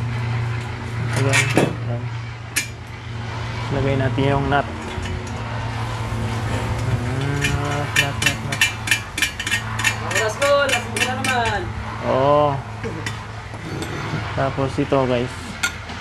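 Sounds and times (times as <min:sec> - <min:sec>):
steady low hum: 0:00.0 - 0:16.0
sharp metallic clicks and taps: 0:06.8 - 0:11.6.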